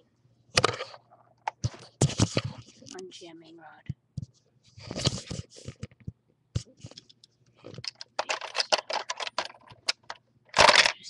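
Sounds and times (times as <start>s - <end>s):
plastic bricks clicking and rattling: 7.0s - 11.0s.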